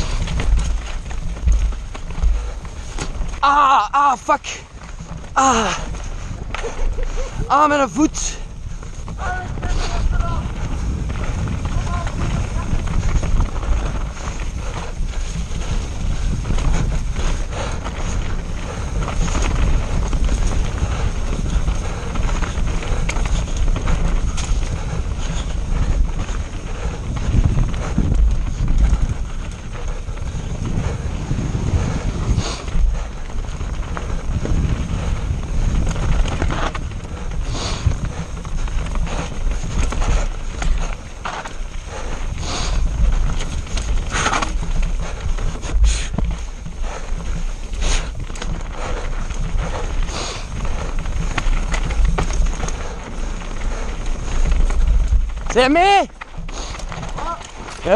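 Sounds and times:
bike knocking and rattling: 0.0 - 57.9
tyres rumbling over dirt and rock: 0.0 - 57.9
wind buffeting microphone: 0.0 - 57.9.

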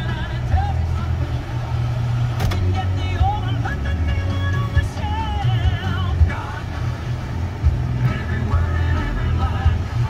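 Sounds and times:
car engine rumble: 0.0 - 10.0
song on car radio: 0.0 - 10.0.

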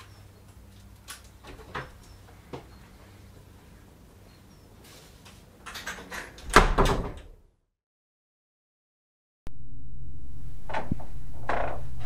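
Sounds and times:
door banging shut with rattle: 5.7 - 7.4.

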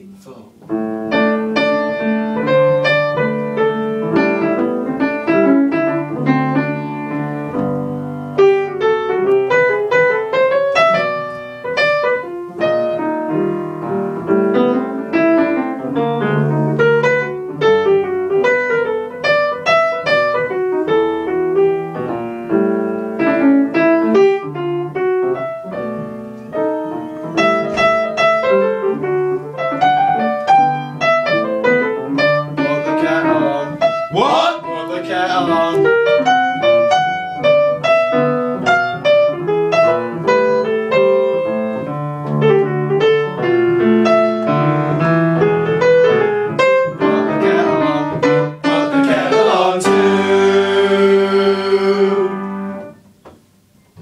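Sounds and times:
solo piano playing: 0.0 - 54.0.

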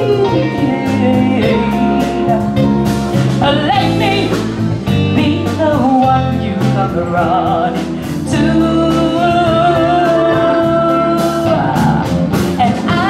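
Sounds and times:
drums: 0.0 - 13.0
electric guitars: 0.0 - 13.0
woman singing lead: 0.0 - 13.0.

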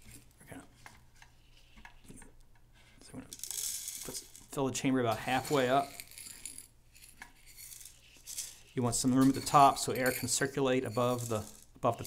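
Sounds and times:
metal scoop scraping pellets: 3.4 - 4.4, 5.0 - 12.0
pellets pouring into plastic: 11.0 - 12.0.

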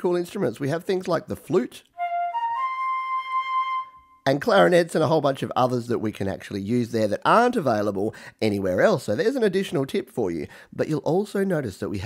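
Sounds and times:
flute notes rising: 2.0 - 4.3.

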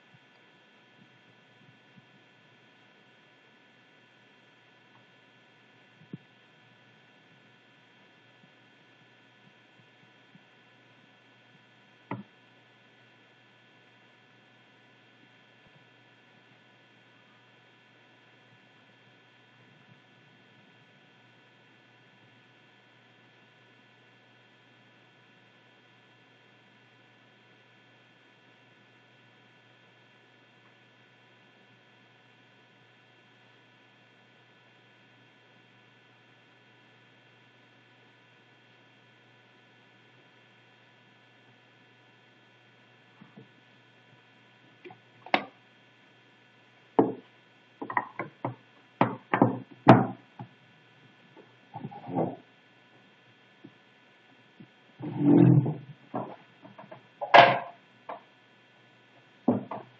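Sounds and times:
faint room hum: 0.0 - 59.9.

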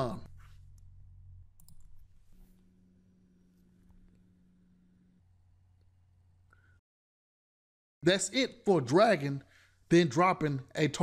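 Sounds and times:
computer mouse clicks: 1.6 - 2.0.

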